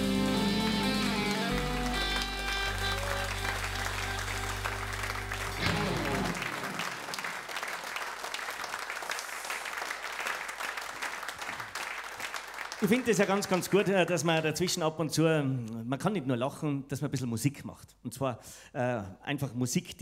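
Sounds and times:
live band final chord ringing: 0.0s - 7.2s
audience applause: 0.0s - 13.9s.

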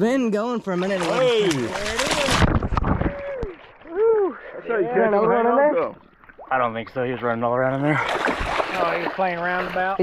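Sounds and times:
water splashing hard: 0.7s - 4.6s, 6.3s - 10.0s
fish thrashing in water: 0.8s - 4.6s, 7.9s - 10.0s.

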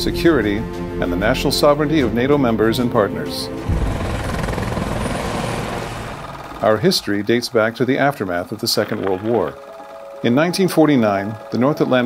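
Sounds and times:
helicopter rotor and engines: 2.0s - 12.0s.

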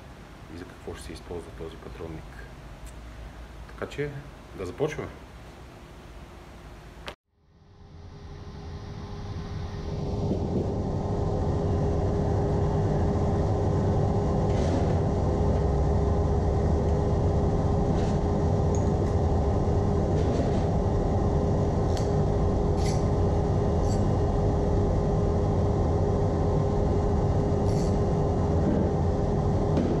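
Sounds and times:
low rumble with hum: 0.0s - 30.0s.

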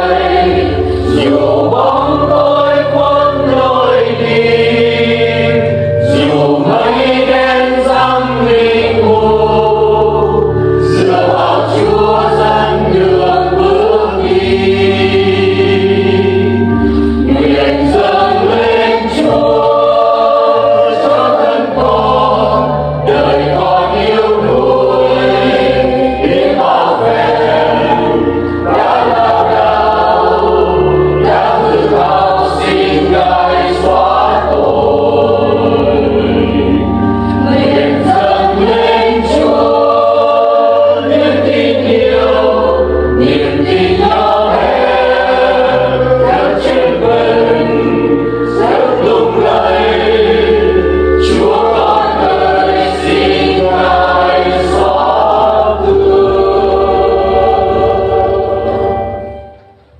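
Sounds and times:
church choir singing a hymn: 0.0s - 59.9s
instrumental accompaniment with bass: 0.0s - 59.9s.

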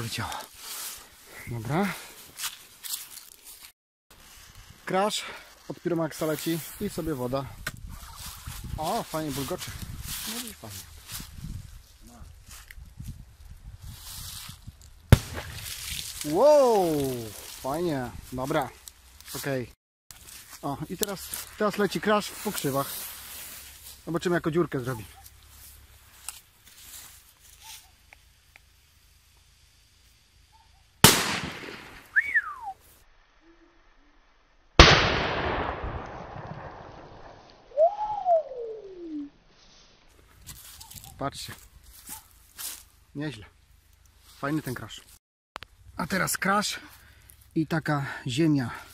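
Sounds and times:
firecracker bangs: 15.1s - 15.7s, 31.0s - 32.2s, 34.8s - 37.4s
firecracker bang in water: 15.1s - 15.8s, 31.1s - 31.9s
rising and falling whistle: 32.1s - 32.8s, 37.7s - 39.3s.

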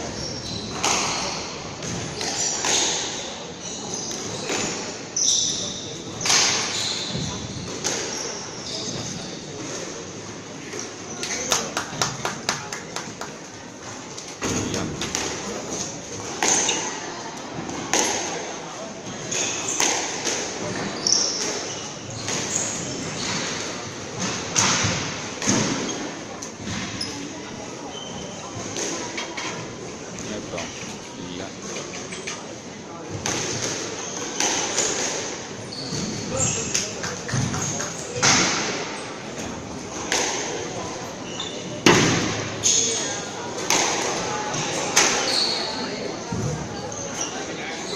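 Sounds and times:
squash ball hits echoing: 0.7s - 3.2s, 33.1s - 39.0s, 39.9s - 41.0s, 41.8s - 45.3s.

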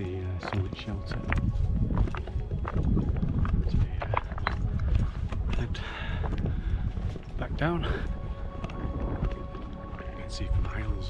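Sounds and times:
hiking boots on loose rock: 0.0s - 10.2s.

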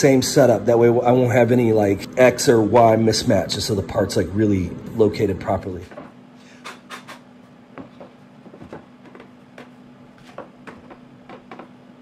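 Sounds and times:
faint steady hum: 0.0s - 12.0s
wooden workpiece knocks and clicks: 10.3s - 11.8s.

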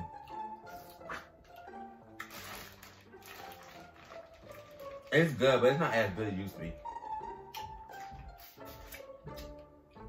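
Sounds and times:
quiet background music: 0.0s - 10.0s
wet chewing and lip-smacking: 7.4s - 9.7s.

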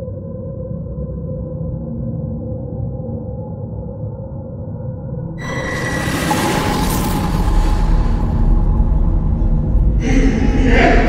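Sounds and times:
dark trailer music: 5.0s - 11.0s
deep rumble: 5.2s - 11.0s
hissing swell: 5.4s - 11.0s.

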